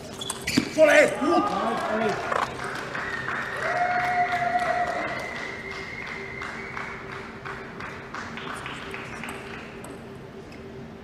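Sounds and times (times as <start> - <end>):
spectators clapping: 0.9 - 10.0.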